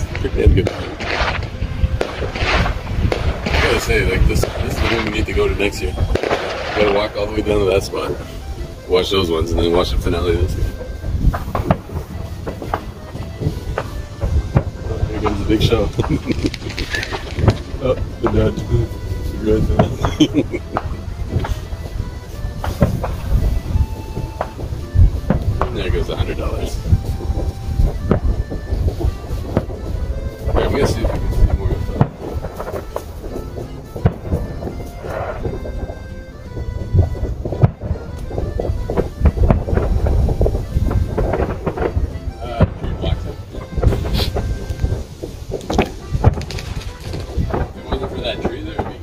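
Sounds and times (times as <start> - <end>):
fireworks booming: 0.0 - 49.0.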